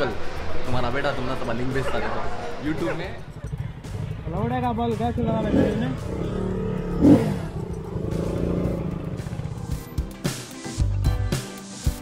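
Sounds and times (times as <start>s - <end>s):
motorcycle engine rumble: 2.4s - 10.0s.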